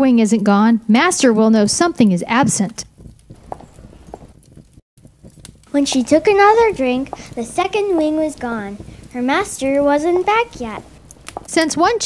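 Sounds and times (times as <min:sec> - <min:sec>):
person narrating: 0:05.7 - 0:10.9.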